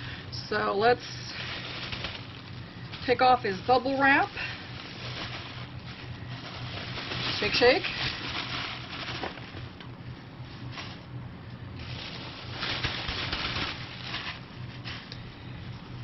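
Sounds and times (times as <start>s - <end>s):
bubble wrap crinkling: 1.0s - 11.2s, 11.8s - 16.0s.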